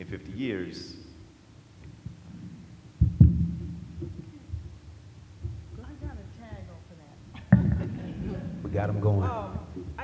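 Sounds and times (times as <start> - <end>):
low hum: 0.9 - 10.0
microphone handling thumps: 1.9 - 6.7, 7.4 - 9.0.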